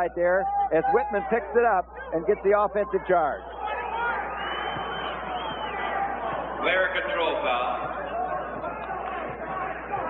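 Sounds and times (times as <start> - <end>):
crowd cheering and chatter: 0.0 - 10.0
high whistle: 3.4 - 6.6.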